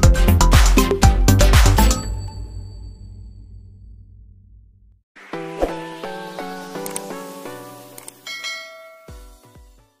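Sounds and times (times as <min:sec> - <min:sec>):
bright bell chime: 0:08.2 - 0:09.6.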